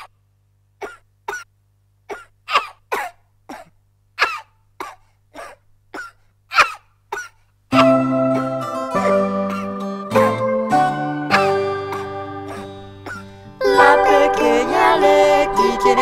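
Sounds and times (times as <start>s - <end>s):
person coughing: 2.1s - 8.0s, 11.3s - 13.3s
plucked string music: 7.7s - 16.0s.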